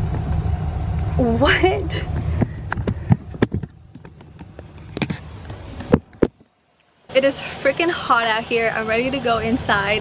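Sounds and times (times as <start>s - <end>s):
low rumble: 0.0s - 7.2s.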